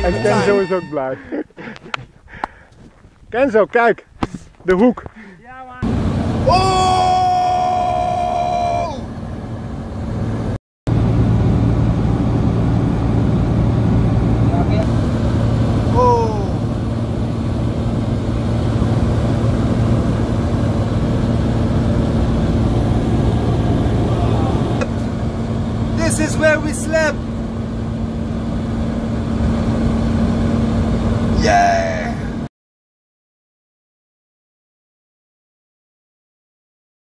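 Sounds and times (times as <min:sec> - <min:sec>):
person speaking: 0:00.0 - 0:01.4
propeller aircraft engine droning: 0:00.0 - 0:32.5.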